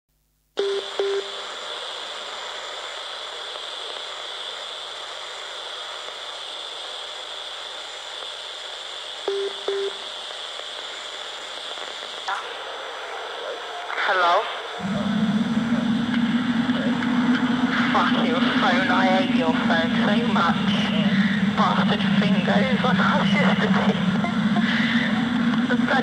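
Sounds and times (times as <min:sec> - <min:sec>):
radio scanner hiss: 0:00.6 - 0:26.0.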